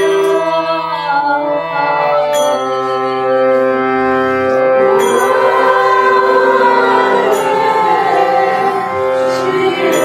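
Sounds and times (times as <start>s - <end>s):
harmonium drone: 0.0s - 10.0s
hand cymbal chime: 2.3s - 3.0s, 4.9s - 8.6s.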